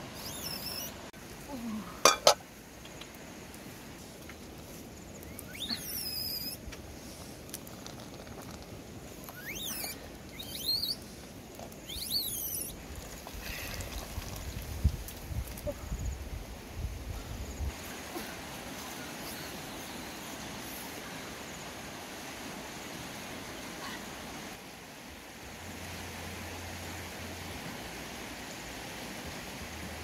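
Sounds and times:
steady background hiss: 0.0s - 30.0s.

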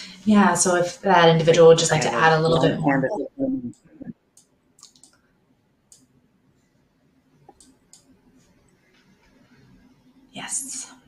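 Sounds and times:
person speaking: 0.0s - 4.1s
faint computer clicks: 4.4s - 5.3s, 7.4s - 9.2s.

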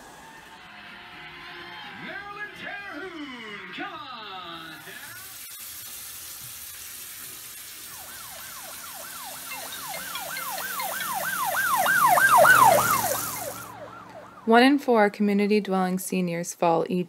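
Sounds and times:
steady hiss: 4.4s - 13.6s
ambulance siren yelping: 7.7s - 14.9s.

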